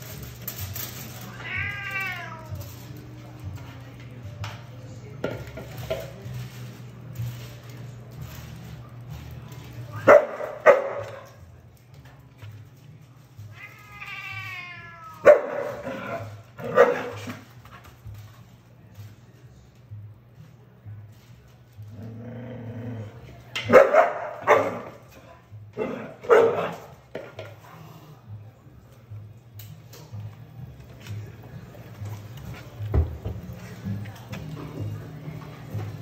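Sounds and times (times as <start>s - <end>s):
dog barking: 10.0s - 11.3s, 15.2s - 17.3s, 23.6s - 25.0s, 25.8s - 26.9s
dog growling low: 21.9s - 23.4s.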